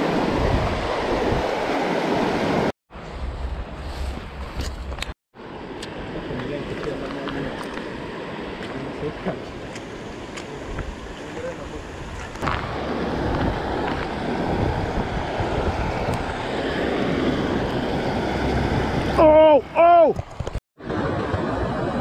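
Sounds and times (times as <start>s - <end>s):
wind on microphone: 0.0s - 5.1s, 10.5s - 19.2s.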